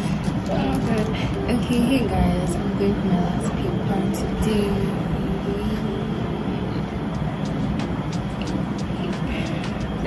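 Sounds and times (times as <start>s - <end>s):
low rumbling noise: 0.0s - 10.0s.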